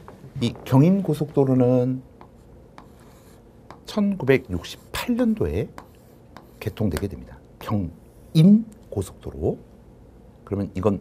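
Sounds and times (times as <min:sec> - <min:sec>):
chalk tapping and scratching: 0:01.1 - 0:08.4.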